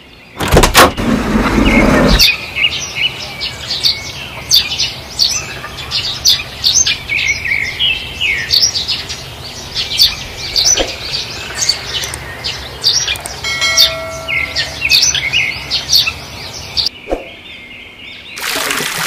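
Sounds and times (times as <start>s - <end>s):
small birds chirping: 0.0s - 18.6s.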